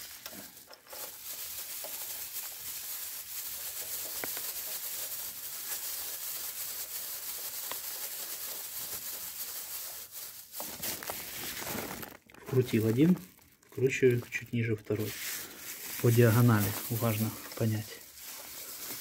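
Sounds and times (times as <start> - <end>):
plastic bag rustling: 0.0 - 19.0.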